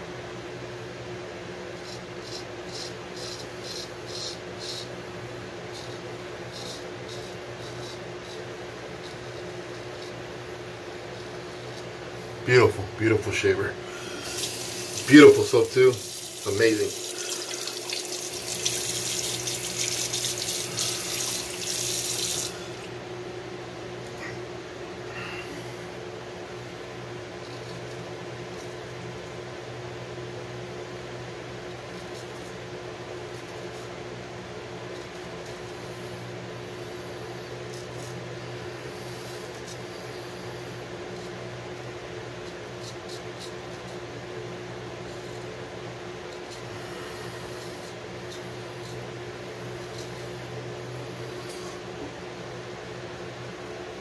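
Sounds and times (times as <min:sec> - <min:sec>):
electric fan humming: 0:00.0 - 0:54.0
safety razor scraping: 0:01.8 - 0:04.9, 0:05.8 - 0:10.4, 0:14.0 - 0:22.6
tap water running: 0:14.2 - 0:22.8.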